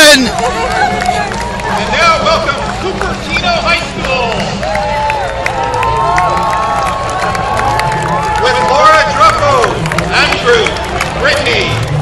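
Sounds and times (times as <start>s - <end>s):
crowd cheering and whooping: 0.0s - 2.7s, 4.2s - 11.1s
scattered clapping: 0.0s - 12.0s.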